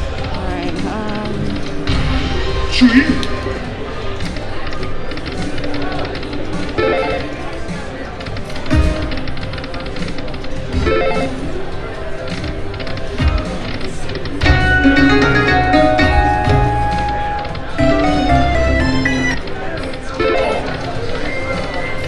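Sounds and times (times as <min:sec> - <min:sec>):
slot machine reel spinning: 0:04.0 - 0:22.0
slot machine game music: 0:05.1 - 0:22.0.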